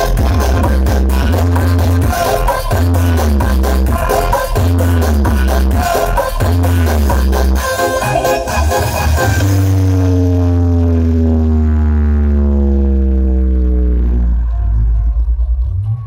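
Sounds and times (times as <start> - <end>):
heavy bass music from speakers: 0.0 - 16.0
long tone gliding downward: 6.8 - 16.0.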